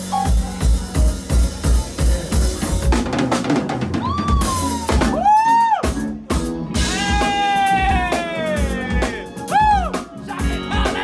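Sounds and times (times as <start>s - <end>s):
live funk band playing: 0.0s - 11.0s.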